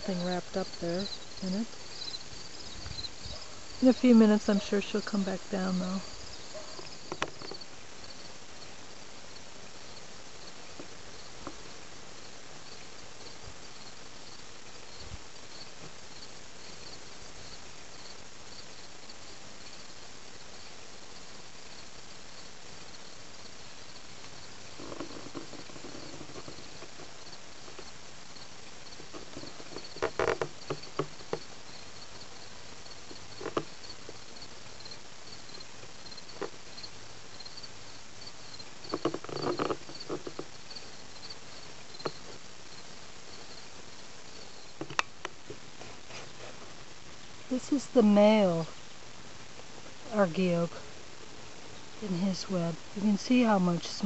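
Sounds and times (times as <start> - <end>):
insects chirping: 0.0 - 45.7, 47.0 - 54.0.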